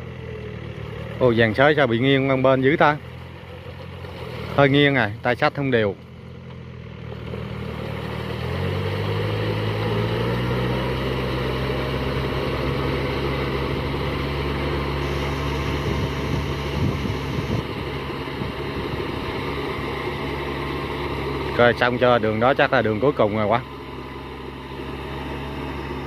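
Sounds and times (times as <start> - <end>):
tractor diesel engine under load: 0.0 - 26.0.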